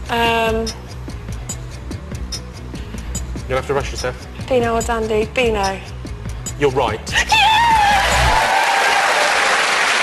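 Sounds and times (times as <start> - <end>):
studio audience applauding: 7.8 - 10.0.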